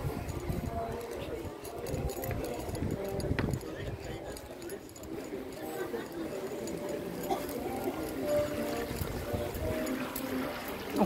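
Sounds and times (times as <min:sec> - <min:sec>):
background music: 0:00.0 - 0:11.0
faint voices: 0:00.0 - 0:11.0
water trickling over cascade: 0:00.0 - 0:11.0.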